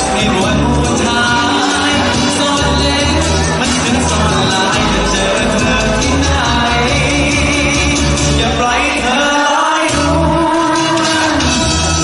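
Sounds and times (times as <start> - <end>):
live band music: 0.0 - 12.0
man singing into microphone: 0.0 - 12.0
steady bass line: 0.0 - 12.0.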